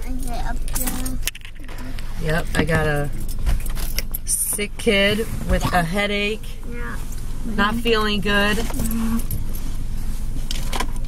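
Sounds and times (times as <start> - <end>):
car rumble from inside: 0.0 - 11.0.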